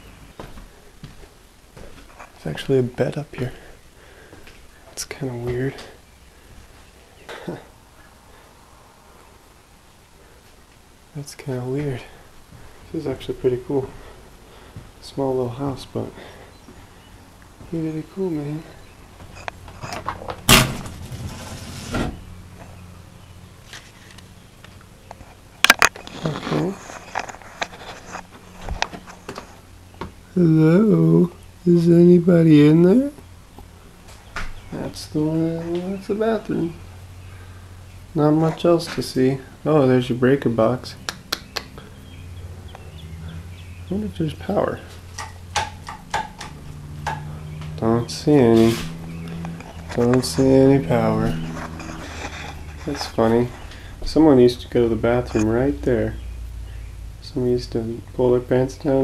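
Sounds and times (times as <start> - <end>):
door dragging: 19.8 - 22.3, 48.3 - 54.2
door clunk: 20.0 - 21.2.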